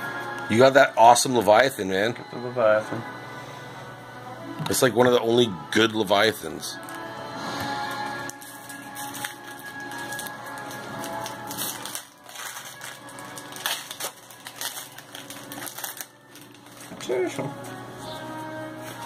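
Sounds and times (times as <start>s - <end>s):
background music: 0.0s - 19.0s
foil wrappers crinkling: 6.2s - 7.1s, 7.8s - 19.0s.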